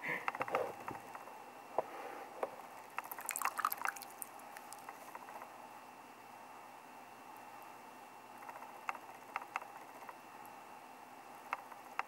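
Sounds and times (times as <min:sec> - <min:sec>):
liquid dripping and splashing: 0:03.0 - 0:04.9.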